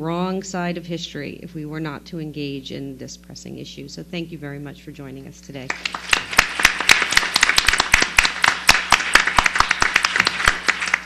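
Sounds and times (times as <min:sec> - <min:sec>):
audience applauding: 0:05.7 - 0:11.0.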